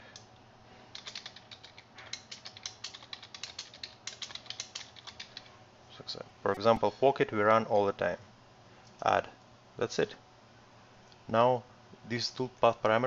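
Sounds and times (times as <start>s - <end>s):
computer keyboard typing: 0.9s - 5.5s.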